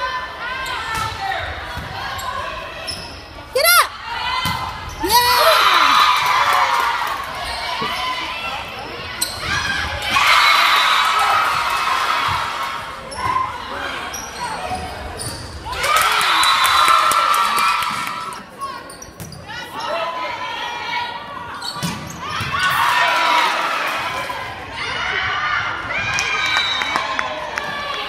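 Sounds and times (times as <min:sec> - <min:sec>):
crowd voices and shouts: 0:00.0 - 0:28.0.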